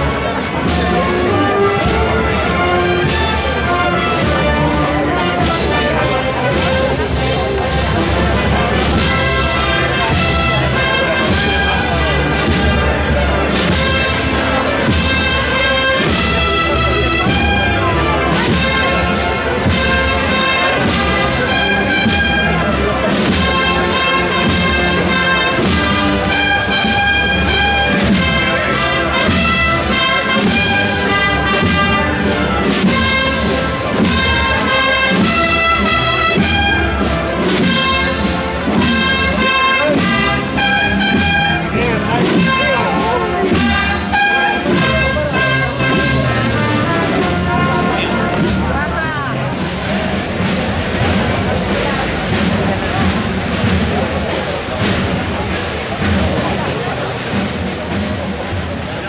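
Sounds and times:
brass band playing a march: 0:00.0 - 0:59.0
murmur of crowd voices: 0:00.0 - 0:59.0.

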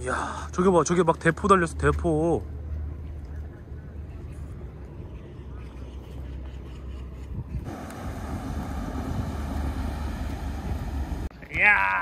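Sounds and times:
wind rumbling on microphone: 0:07.2 - 0:11.3
small motorboat running: 0:07.7 - 0:11.3.

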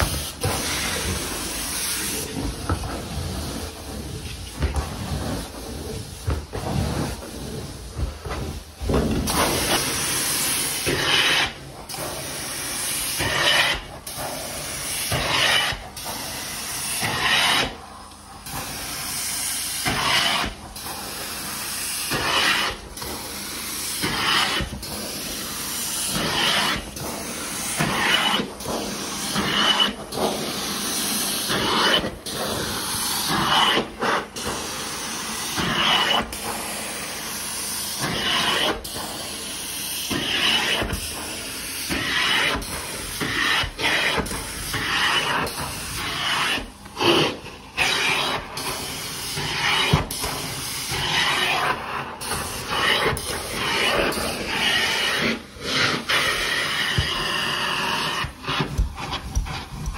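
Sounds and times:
carpet extractor suction hiss: 0:00.0 - 0:59.9.

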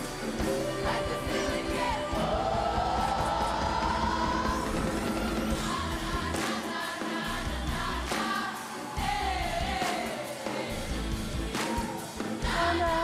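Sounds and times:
backing music: 0:00.0 - 0:13.0
youth choir singing: 0:00.0 - 0:13.0.

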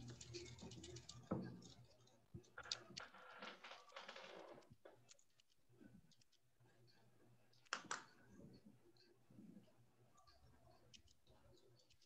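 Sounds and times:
faint typing on computer keyboard: 0:00.0 - 0:12.0.

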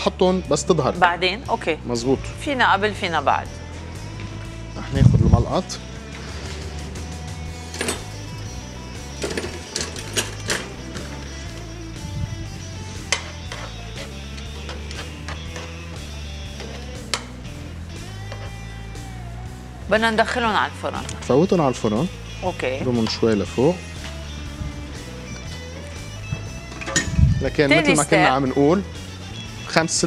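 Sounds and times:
background music with bass line: 0:00.0 - 0:30.0.

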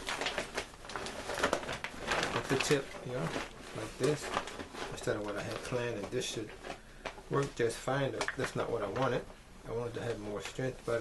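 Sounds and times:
plastic tarp crinkling: 0:00.0 - 0:09.2.

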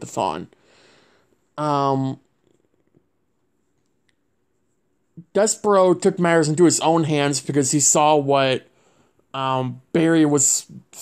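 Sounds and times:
man saying um: 0:01.6 - 0:02.3, 0:09.4 - 0:11.0.

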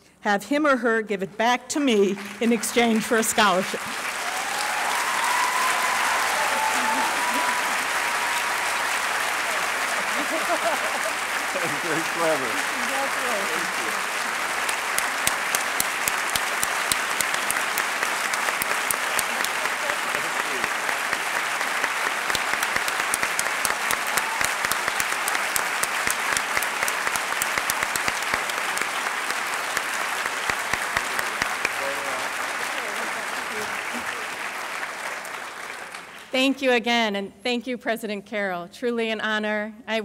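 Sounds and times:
audience applauding: 0:02.0 - 0:36.4.

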